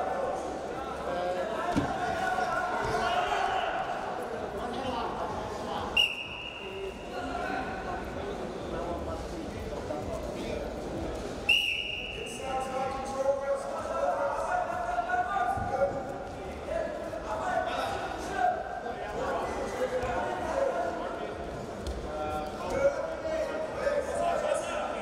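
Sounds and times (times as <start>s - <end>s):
shouting voices in a hall: 0.0s - 25.0s
referee's whistle: 6.0s - 6.7s, 11.5s - 12.4s.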